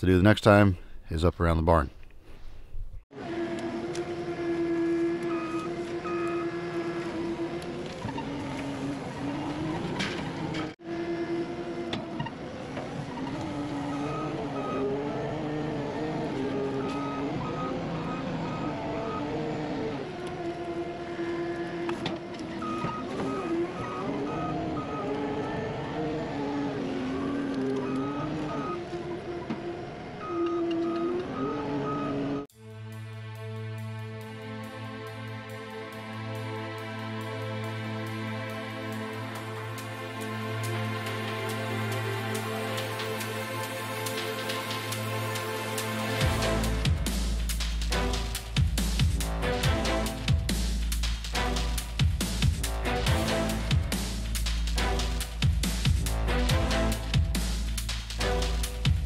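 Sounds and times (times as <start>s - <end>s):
loader engine running: 3.1s - 59.0s.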